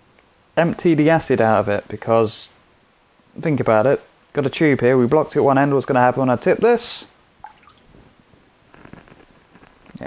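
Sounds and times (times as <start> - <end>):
liquid dripping and trickling: 7.4 - 8.0.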